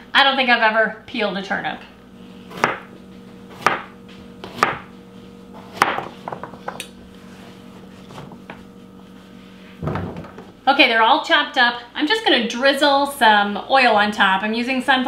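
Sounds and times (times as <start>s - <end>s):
steady low hum: 0.0s - 15.0s
knife chopping on plastic board: 2.5s - 2.9s, 3.6s - 4.9s, 5.7s - 6.8s.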